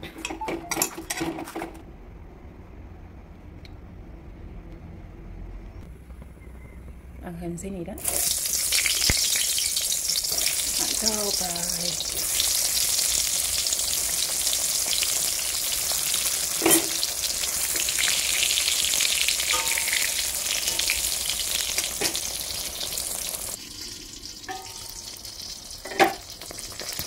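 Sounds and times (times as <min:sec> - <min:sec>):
food sizzling in hot oil: 0:08.0 - 0:27.0.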